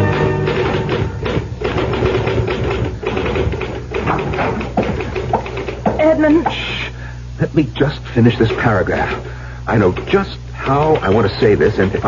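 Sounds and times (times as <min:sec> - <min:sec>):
typewriter keys clacking: 0:09.7 - 0:12.0.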